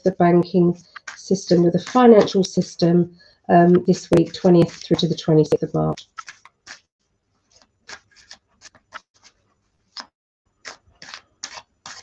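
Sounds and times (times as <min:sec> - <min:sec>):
cards shuffling and clicking: 0:06.0 - 0:12.0.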